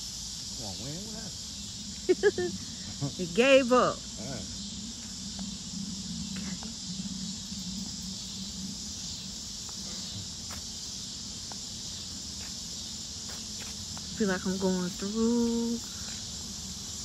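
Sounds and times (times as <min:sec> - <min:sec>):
insects droning: 0:00.0 - 0:17.0
footsteps on pavement: 0:09.6 - 0:14.5.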